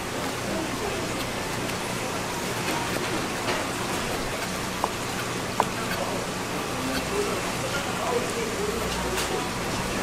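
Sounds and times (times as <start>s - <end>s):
knife tapping cutting board: 5.6s - 6.0s.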